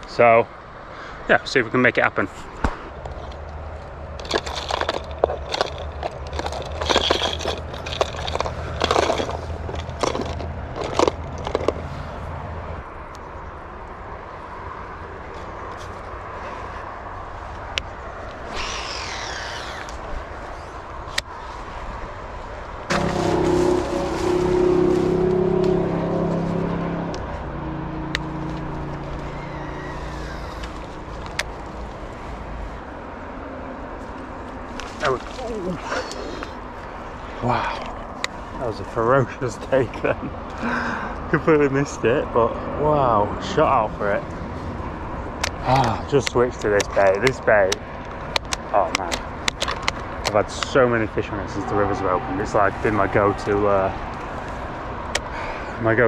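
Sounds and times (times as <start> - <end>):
plastic lures clicking and rattling: 4.2 - 11.8.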